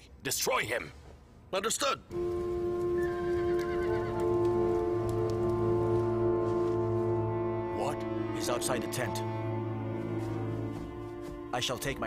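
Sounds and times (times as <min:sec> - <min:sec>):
sustained score music chord: 0:02.1 - 0:12.0
horse whinnying: 0:03.1 - 0:04.2.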